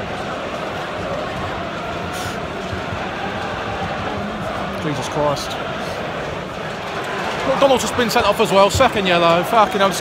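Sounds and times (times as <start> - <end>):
crowd singing a chant: 0.0 - 10.0
crowd voices din: 0.0 - 10.0.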